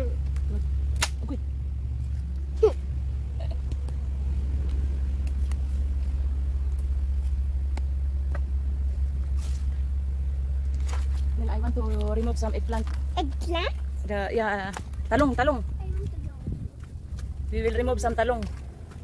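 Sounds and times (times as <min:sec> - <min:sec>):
steady low rumble: 0:00.0 - 0:19.0.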